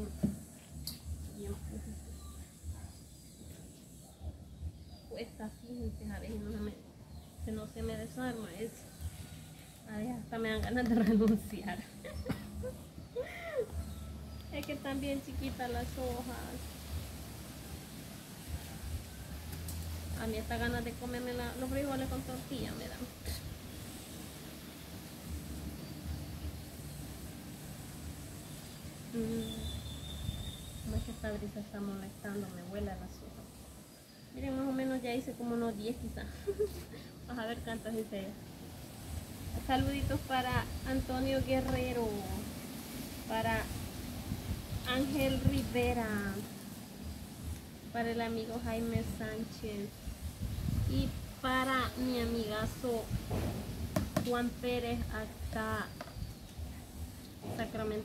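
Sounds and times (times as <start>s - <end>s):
wind buffeting microphone: 43.4s - 46.4s, 48.6s - 57.8s.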